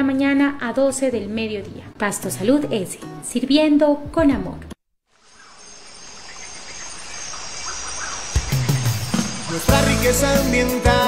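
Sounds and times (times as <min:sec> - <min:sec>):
bird chirps: 0:05.3 - 0:10.0.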